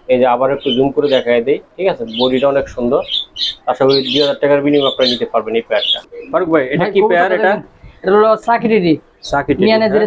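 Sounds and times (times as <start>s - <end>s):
man speaking: 0.0s - 10.0s
pigeon cooing: 2.1s - 6.4s.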